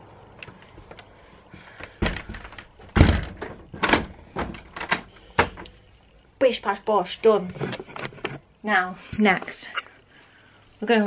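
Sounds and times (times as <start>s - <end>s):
door thunks and handle clunks: 1.8s - 5.6s.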